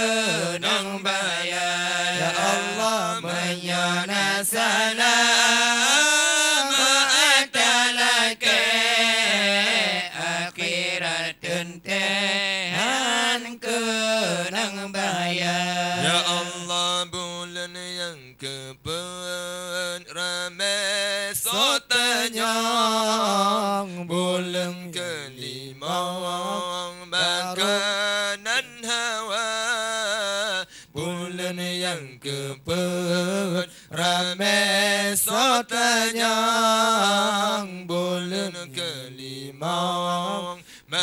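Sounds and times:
man chanting: 0:00.0 - 0:41.0
short breaths: 0:30.7 - 0:31.0, 0:33.7 - 0:33.9, 0:40.6 - 0:40.9.

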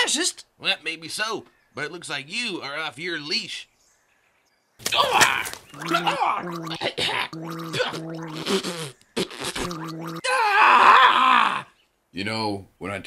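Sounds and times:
man gagging and gargling: 0:05.0 - 0:11.6.

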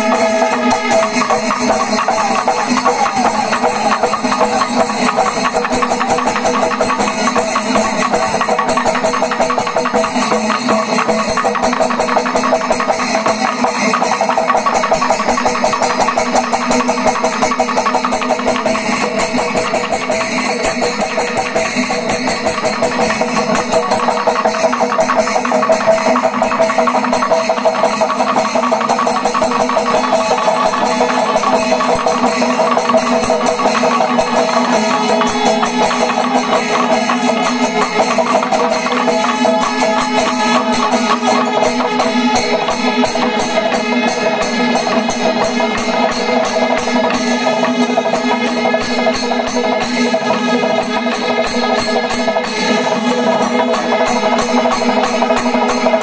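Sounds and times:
steady held tones: 0:00.0 - 0:14.7, 0:28.6 - 0:49.6
cymbals: 0:00.0 - 0:56.0
temple drums playing fast rhythm: 0:00.0 - 0:56.0.

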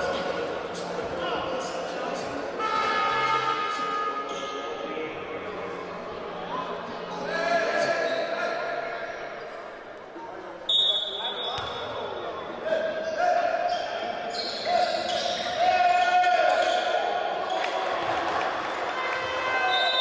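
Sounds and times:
referee's whistle blast: 0:10.7 - 0:11.7, 0:19.6 - 0:20.0.

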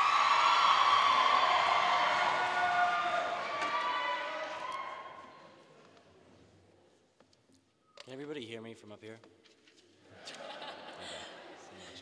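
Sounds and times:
audience applause: 0:00.0 - 0:04.8.

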